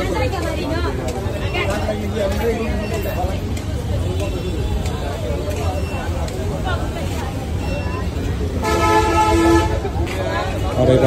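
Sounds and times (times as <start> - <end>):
busy street chatter: 0.0 - 11.0
vehicle horn toot: 8.6 - 9.8.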